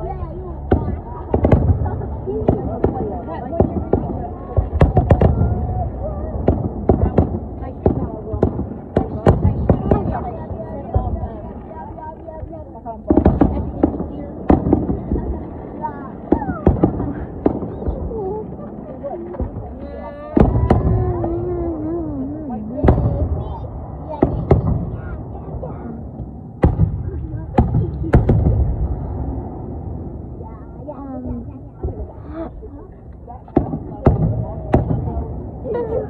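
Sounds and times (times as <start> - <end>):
fireworks bangs: 0.0 - 36.0.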